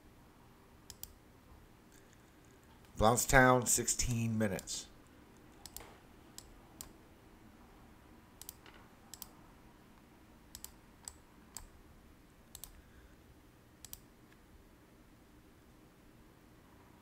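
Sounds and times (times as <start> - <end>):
quiet room hum: 0.0 - 17.0
computer mouse clicks: 0.9 - 1.2, 5.4 - 7.0, 8.4 - 9.4, 10.5 - 11.7, 12.5 - 12.8, 13.8 - 14.4.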